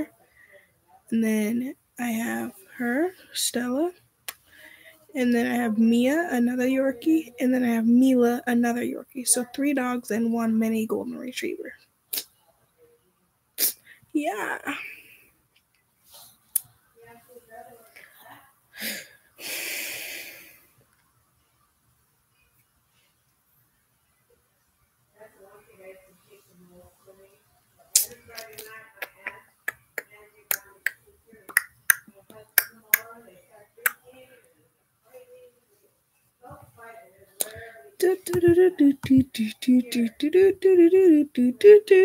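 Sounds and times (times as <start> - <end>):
soft voice humming or murmuring: 37.4 - 42.0.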